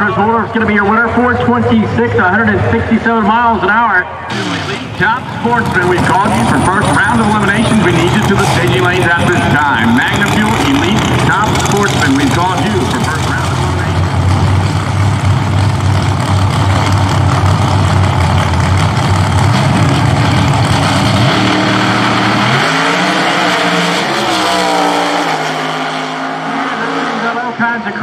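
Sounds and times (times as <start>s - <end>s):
drag car engines roaring: 0.0s - 28.0s.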